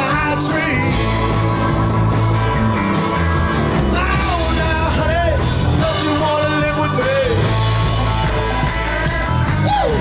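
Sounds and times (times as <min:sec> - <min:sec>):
drum kit: 0:00.0 - 0:10.0
electric bass: 0:00.0 - 0:10.0
electric guitar: 0:00.0 - 0:10.0.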